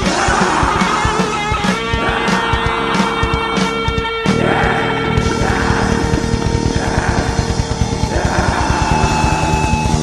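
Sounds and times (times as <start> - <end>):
distorted electric guitars: 0.0 - 10.0
very fast drumming: 0.0 - 10.0.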